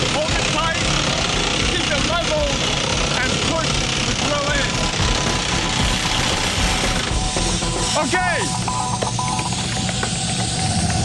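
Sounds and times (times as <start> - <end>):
rock drill hammering: 0.0 - 11.0
background music with held tones: 0.8 - 11.0.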